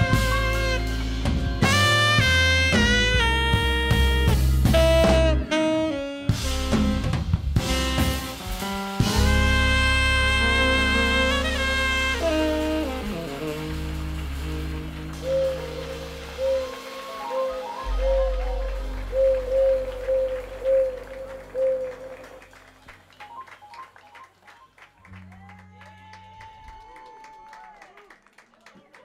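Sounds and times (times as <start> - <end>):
jazz quartet playing live: 0.0 - 22.8
audience applauding: 11.0 - 29.0
audience cheer: 25.2 - 28.2.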